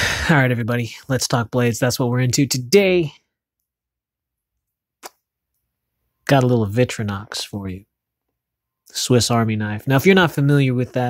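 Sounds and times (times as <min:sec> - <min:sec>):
person speaking: 0:00.0 - 0:03.2.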